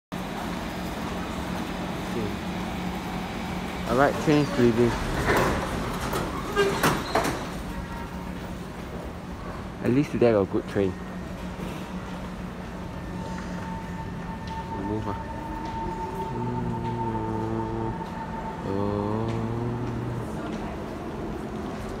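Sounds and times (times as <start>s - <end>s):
train humming at platform: 0.1s - 22.0s
steady high tone: 12.8s - 20.4s.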